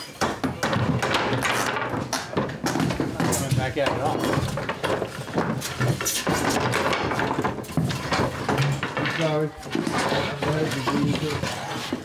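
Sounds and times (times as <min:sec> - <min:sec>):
wood knocking on wood: 0:00.2 - 0:12.0.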